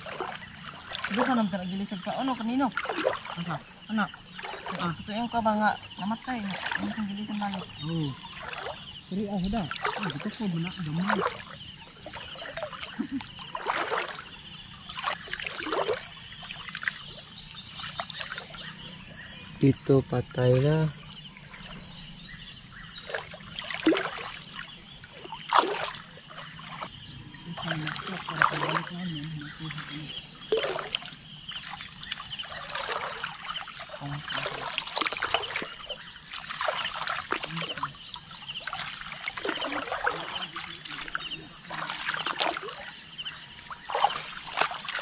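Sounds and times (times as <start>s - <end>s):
splashing in shallow water: 0.0s - 45.0s.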